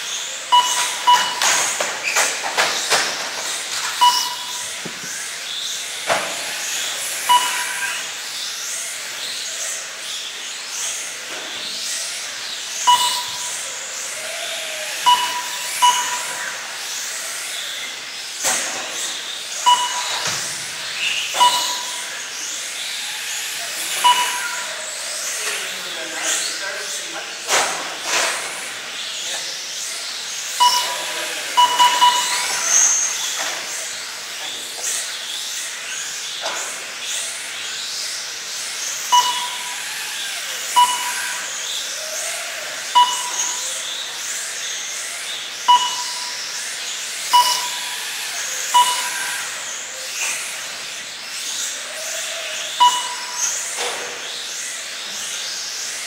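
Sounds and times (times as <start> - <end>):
short electronic beeps: 0.5 - 1.8, 4.0 - 4.8, 7.3 - 8.1, 12.9 - 13.7, 15.0 - 16.6, 19.7 - 20.6, 21.2 - 22.2, 23.9 - 24.8, 30.6 - 33.0, 39.1 - 39.8, 40.7 - 41.5, 43.0 - 43.7, 45.7 - 46.5, 47.3 - 48.0, 48.7 - 49.6, 52.8 - 53.6
electric motor whines: 2.8 - 25.9, 38.6 - 53.7.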